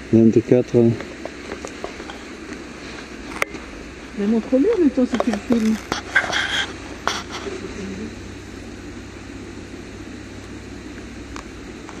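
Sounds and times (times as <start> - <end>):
steady low noise: 0.0 - 12.0
faint clicks and rustles: 1.0 - 3.7, 4.3 - 8.0.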